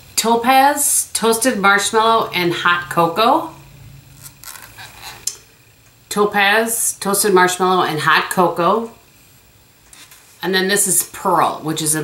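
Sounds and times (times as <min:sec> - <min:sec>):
soft rustling and scraping: 0:04.2 - 0:05.2, 0:09.8 - 0:10.5.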